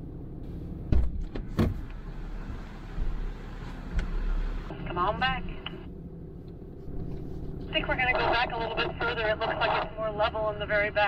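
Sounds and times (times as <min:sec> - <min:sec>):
truck engine running: 0:00.0 - 0:11.0.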